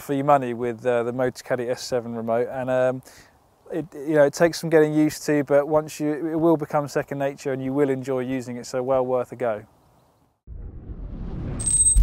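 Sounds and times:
electronic whoosh: 10.5s - 12.0s
high bright ringing tone: 11.6s - 12.0s.

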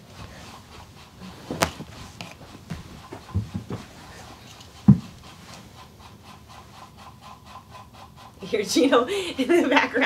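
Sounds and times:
soft knocks: 2.7s - 4.0s, 4.8s - 5.2s.

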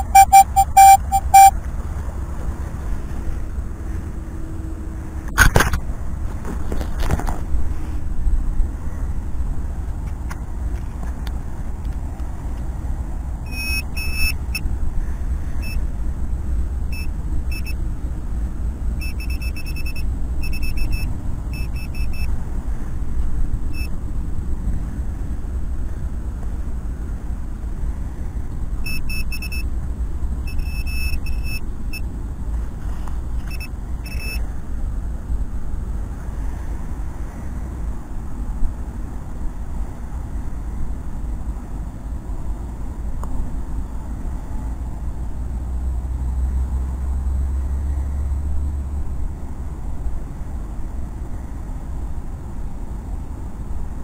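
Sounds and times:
pinpointer high beeps: 0.0s - 1.6s, 13.5s - 14.6s, 16.9s - 17.8s, 19.0s - 22.3s, 28.8s - 29.7s, 30.5s - 32.0s, 33.5s - 34.4s.

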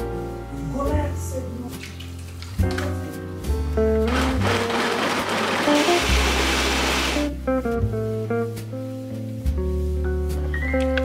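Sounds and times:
guitar background music: 0.0s - 11.0s
blender running: 4.1s - 7.3s.

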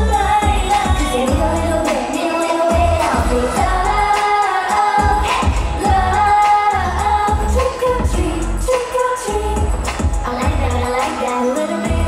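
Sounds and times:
pop backing track with heavy bass: 0.0s - 12.0s
women singing: 0.0s - 12.0s.

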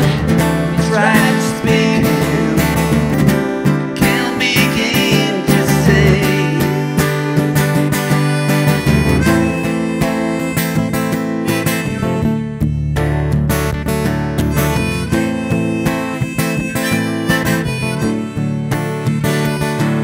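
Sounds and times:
harmonica: 0.0s - 20.0s
strummed acoustic guitar: 0.0s - 20.0s.

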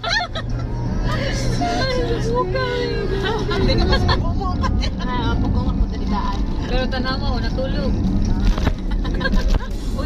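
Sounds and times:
car interior rumble: 0.0s - 10.0s
women's voices: 1.1s - 8.0s.

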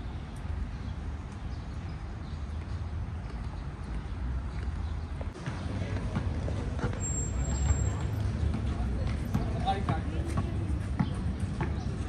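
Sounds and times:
distant voices: 0.7s - 12.0s.

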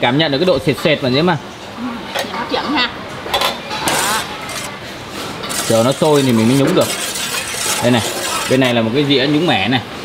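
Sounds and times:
steady noisy hum: 0.0s - 10.0s.

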